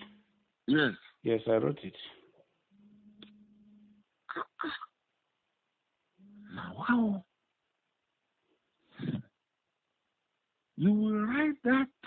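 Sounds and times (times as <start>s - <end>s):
short low male vocal sound: 9.0s - 9.2s.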